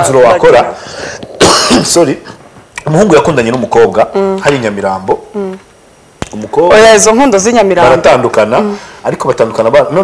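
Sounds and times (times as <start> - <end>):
man coughing: 1.4 - 2.0
man speaking: 6.3 - 10.0.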